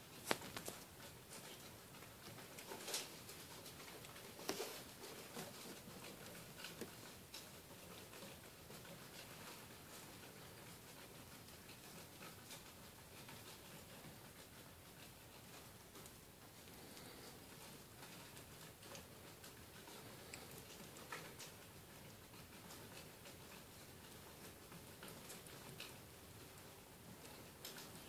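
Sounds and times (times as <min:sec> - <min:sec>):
faint ticks and rustles in bedding: 0:00.0 - 0:28.0.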